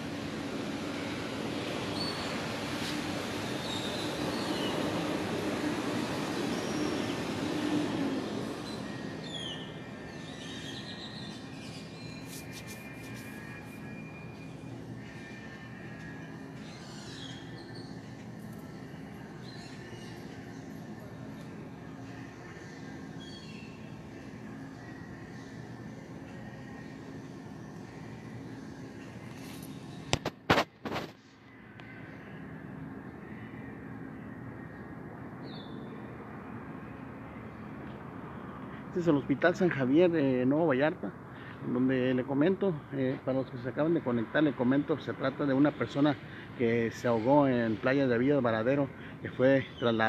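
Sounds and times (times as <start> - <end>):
mechanical hum: 0.0 - 50.0.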